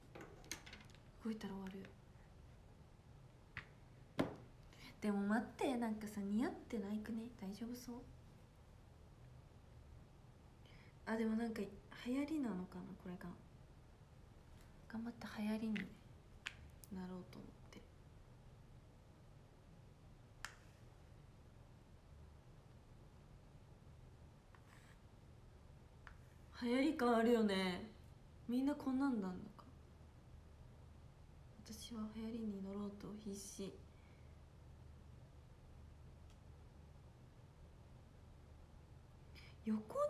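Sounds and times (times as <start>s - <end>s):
faint click: 36.2s - 36.5s.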